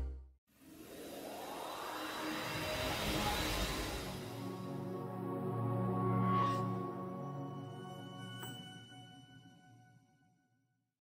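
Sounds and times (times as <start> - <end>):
synthesized whoosh riser: 0.6 - 7.2.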